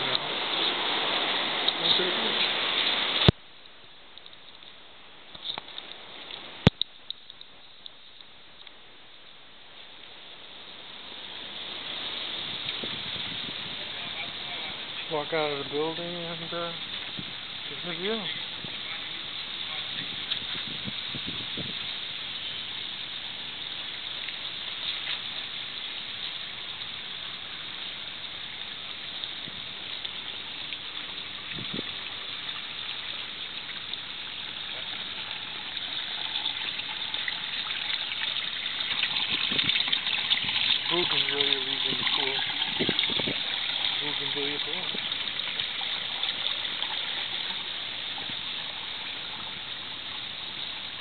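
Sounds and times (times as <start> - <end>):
splashing water at a pool: 0.0 - 51.0.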